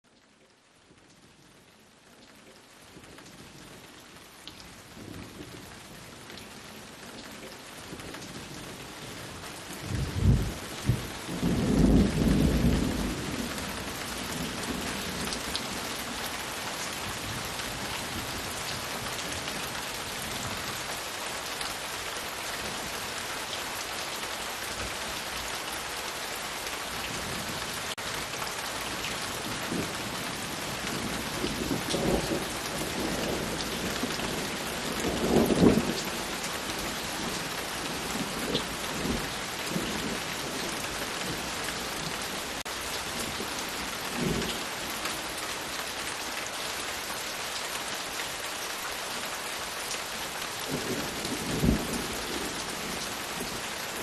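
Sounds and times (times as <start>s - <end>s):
steady rain falling: 0.0s - 54.0s.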